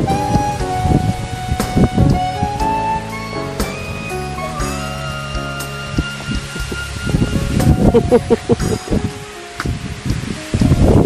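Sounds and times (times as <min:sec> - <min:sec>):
background music with held notes: 0:00.0 - 0:11.0
grass rustling: 0:03.0 - 0:11.0
person laughing: 0:07.9 - 0:09.0.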